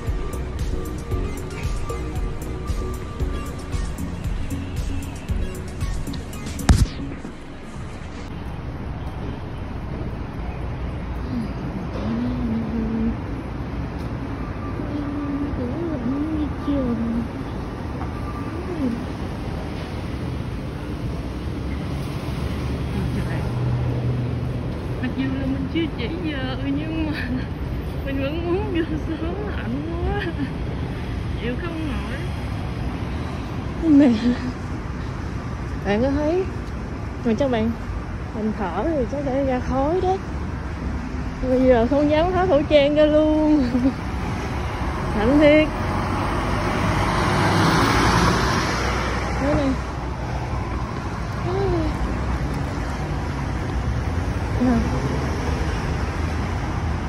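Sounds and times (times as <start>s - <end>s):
bus driving past: 0.0s - 57.0s
road rumble: 0.0s - 57.0s
street traffic: 0.0s - 57.0s
vehicle engine hum: 0.0s - 57.0s.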